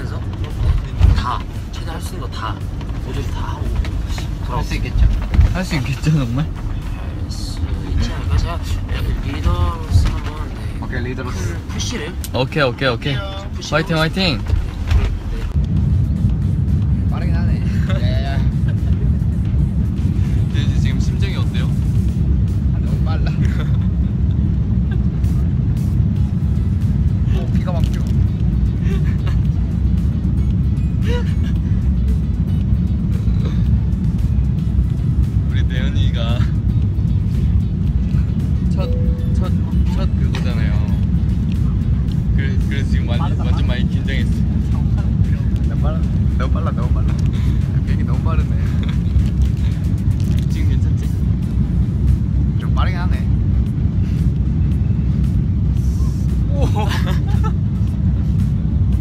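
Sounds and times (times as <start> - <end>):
airliner engines rumbling: 0.0 - 59.0.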